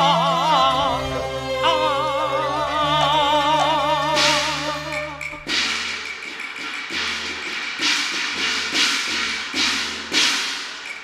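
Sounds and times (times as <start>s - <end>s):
cymbal crashes: 4.2s - 11.0s.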